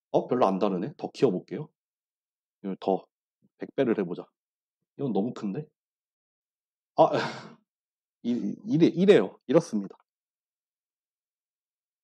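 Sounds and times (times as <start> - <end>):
man's breathy laugh: 7.1 - 7.6.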